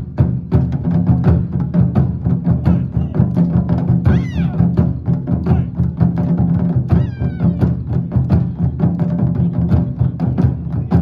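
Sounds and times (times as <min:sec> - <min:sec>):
taiko drums: 0:00.0 - 0:11.0
high gliding cries: 0:04.1 - 0:04.6, 0:06.9 - 0:07.7.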